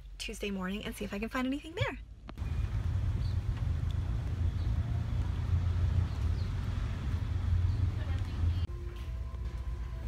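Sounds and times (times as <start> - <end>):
low rumble: 2.0 - 10.0.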